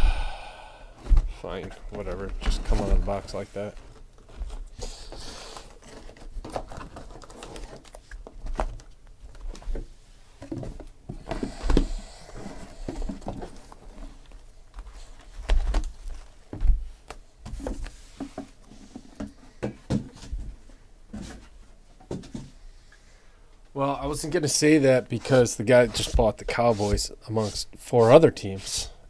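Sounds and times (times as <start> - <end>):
plastic wrap crinkling: 5.5 - 9.6.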